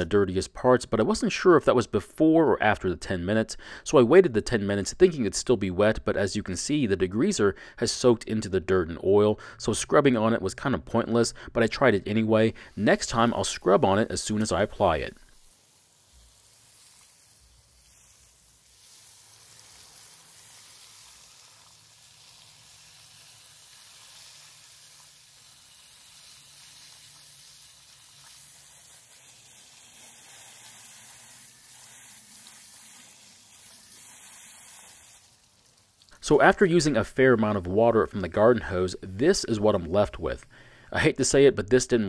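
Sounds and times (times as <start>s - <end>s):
hose water spattering on metal: 12.6s - 40.1s.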